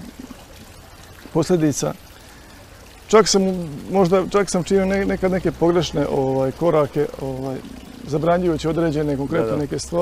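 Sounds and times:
fountain water trickling: 0:00.0 - 0:10.0
man speaking: 0:03.1 - 0:10.0.

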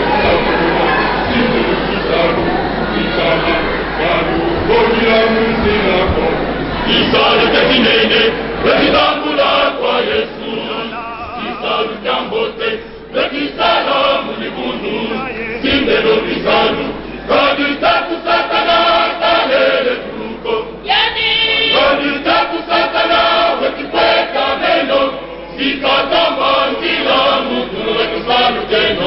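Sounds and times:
lead voice singing: 0:00.0 - 0:29.0
male choir singing unaccompanied: 0:00.0 - 0:29.0.

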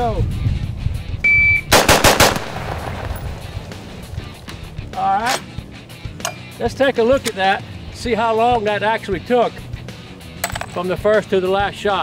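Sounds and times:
rifle shots with echo: 0:01.7 - 0:04.1.

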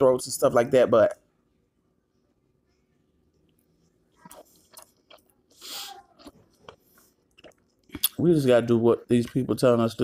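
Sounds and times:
person chewing food: 0:03.3 - 0:08.2
wet mouth clicks: 0:06.2 - 0:08.2.

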